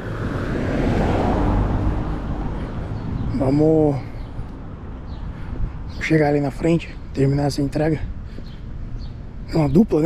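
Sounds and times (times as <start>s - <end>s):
distant traffic: 0.0s - 10.0s
wind on microphone: 4.4s - 6.0s.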